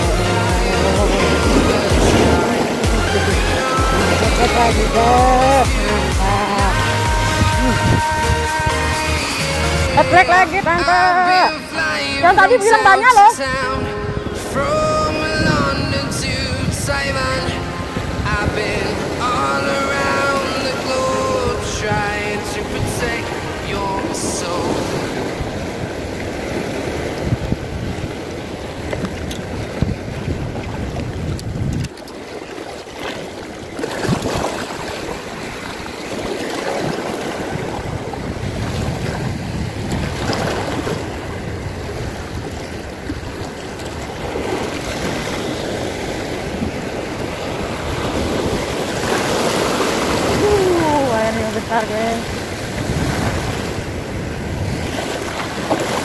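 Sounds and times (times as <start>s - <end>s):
waves washing over seawall: 0.0s - 56.0s
wind rumbling on microphone: 0.0s - 56.0s.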